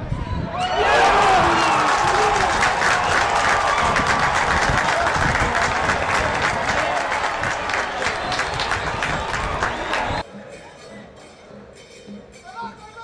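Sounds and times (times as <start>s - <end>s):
stadium crowd cheering: 0.5s - 10.2s
crowd clapping: 0.8s - 10.2s.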